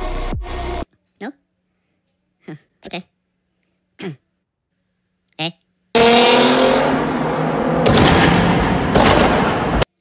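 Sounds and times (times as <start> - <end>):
high cartoon voice chirps: 5.3 - 5.6
loud car engine: 5.9 - 9.9.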